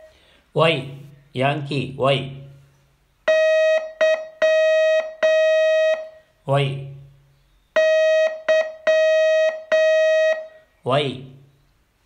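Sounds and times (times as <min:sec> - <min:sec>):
morse code beeps: 0:03.3 - 0:06.3, 0:07.7 - 0:10.7.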